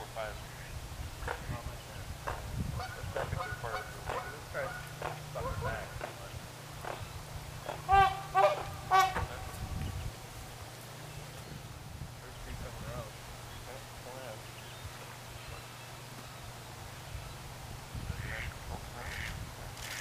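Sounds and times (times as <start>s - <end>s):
waterfowl calling: 0.0s - 11.8s, 13.1s - 20.0s.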